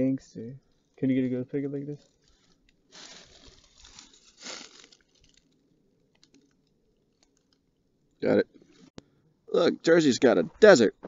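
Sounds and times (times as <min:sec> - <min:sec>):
crunching on dry ground cover: 0:02.0 - 0:05.6.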